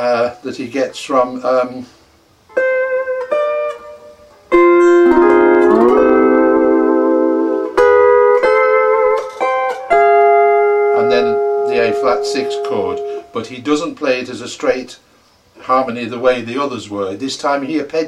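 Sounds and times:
lap steel guitar playing: 2.5s - 13.4s.

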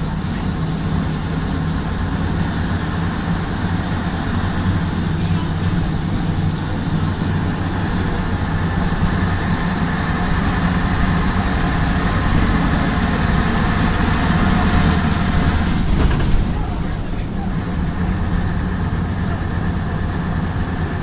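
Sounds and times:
bus diesel engine droning: 0.0s - 21.0s
road noise: 0.0s - 21.0s.

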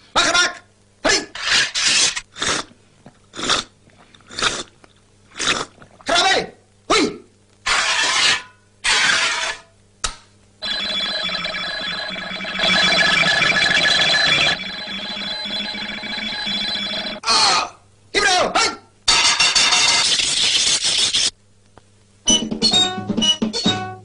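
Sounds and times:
alarm-like ringing: 10.6s - 17.2s
pitch-bending bursts: 10.6s - 17.2s.

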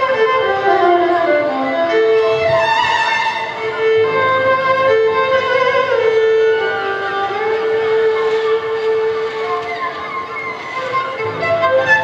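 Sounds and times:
solo violin: 0.0s - 12.0s.

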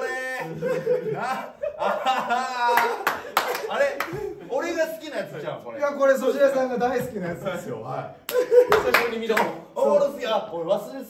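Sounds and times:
men laughing hard: 0.0s - 4.5s, 8.3s - 9.0s
sharp hand claps: 2.7s - 4.2s, 8.3s - 9.6s.

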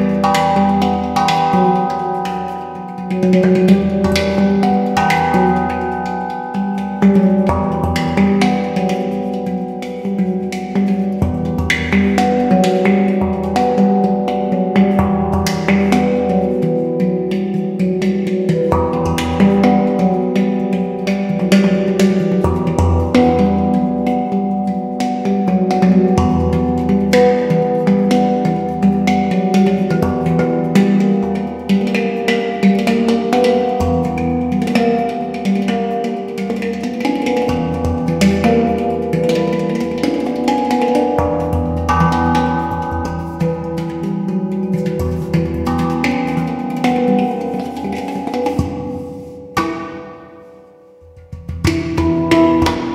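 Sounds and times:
handpan notes ringing: 0.0s - 52.9s.

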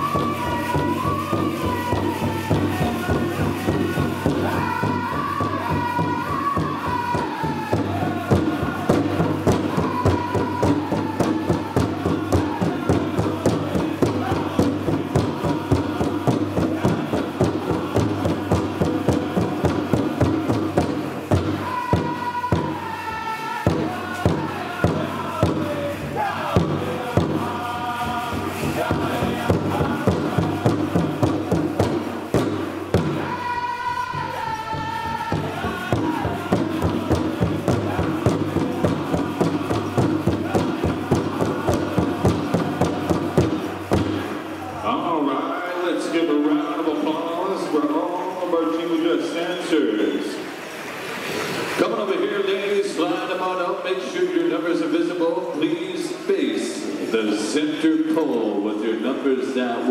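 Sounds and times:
steady drumbeat: 0.0s - 44.9s
group singing in high voices: 0.0s - 45.3s.

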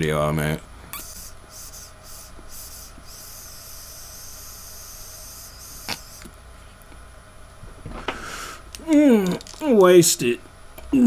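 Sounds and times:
vape pen hissing puffs: 0.9s - 6.3s.

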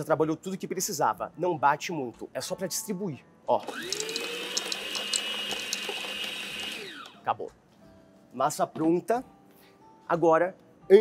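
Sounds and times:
stand mixer motor whine: 3.6s - 7.2s.

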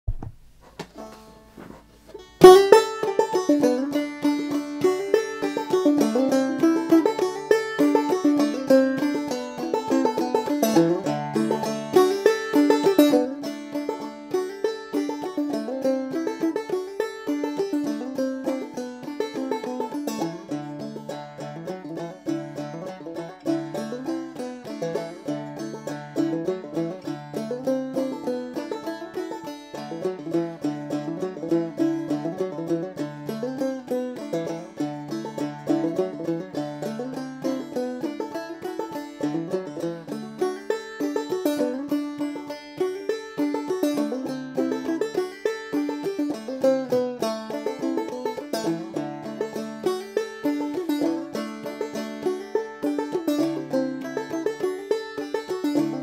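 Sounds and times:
banjo playing old-time tune: 0.1s - 56.0s.

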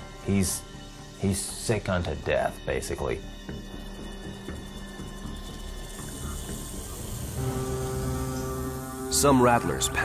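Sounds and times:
background music: 0.0s - 10.0s
rattlesnake tail rattling: 3.4s - 10.0s.

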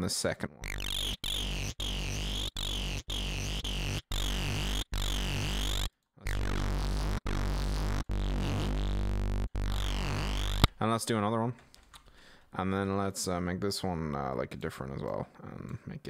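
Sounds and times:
distorted synth notes: 0.6s - 10.7s.

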